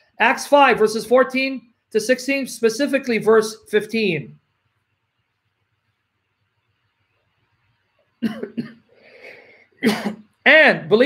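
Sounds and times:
man coughing: 8.2s - 8.8s, 9.8s - 10.3s.

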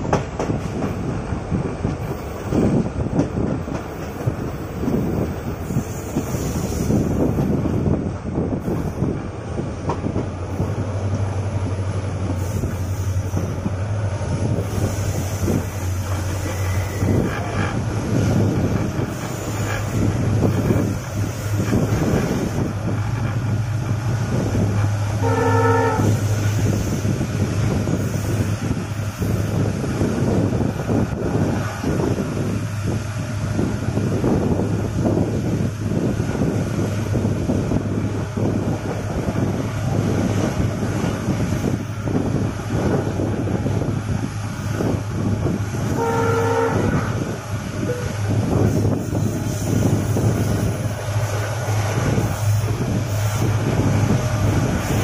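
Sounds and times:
train rumbling: 0.0s - 55.0s
wind: 0.0s - 55.0s
train horn blast: 25.1s - 26.4s, 45.8s - 47.3s.

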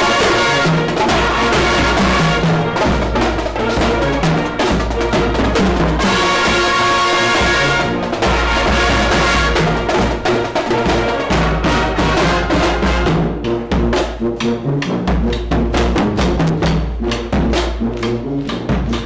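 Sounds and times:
marching band brass: 0.0s - 19.0s
steady drum beat: 0.0s - 19.0s.

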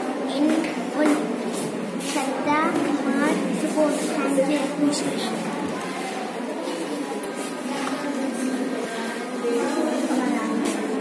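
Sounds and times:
children's voices: 0.0s - 11.0s
overlapping chatter: 0.0s - 11.0s.

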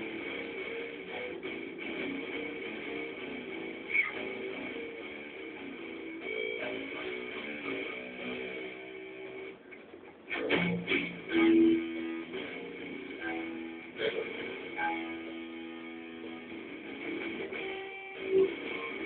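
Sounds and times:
electric guitar notes: 0.0s - 19.0s.

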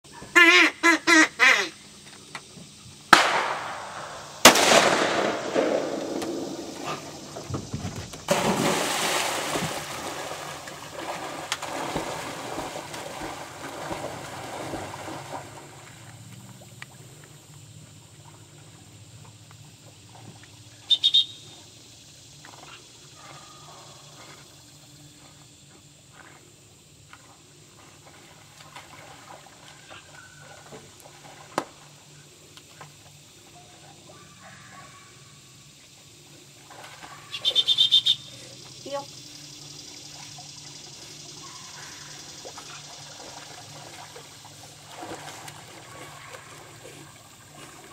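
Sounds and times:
duck call quacks: 0.2s - 1.8s
shotgun shots echoing: 3.1s - 6.8s
faint water sloshing: 5.9s - 47.9s
high-pitched whistle blasts: 20.9s - 21.4s.

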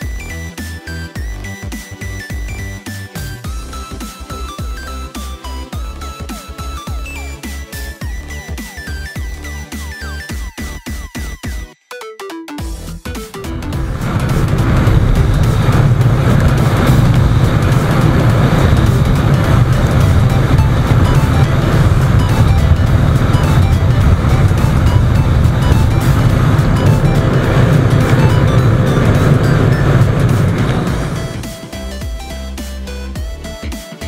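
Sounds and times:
electronic background music: 0.0s - 34.0s
motorcycle engine running: 13.6s - 32.4s.

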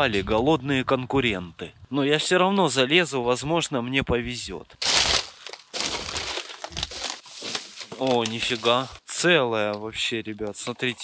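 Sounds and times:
plastic bags rustling: 4.8s - 9.0s.

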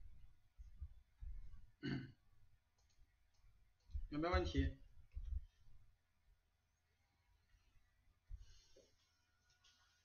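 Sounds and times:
faint clicks: 2.7s - 4.0s.

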